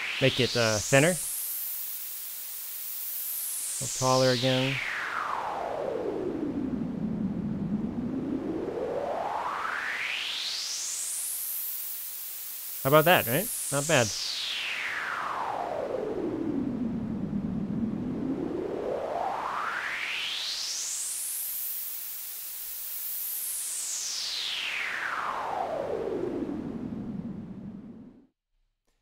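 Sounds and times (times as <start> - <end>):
filtered noise sweeping: 0.0 - 16.0.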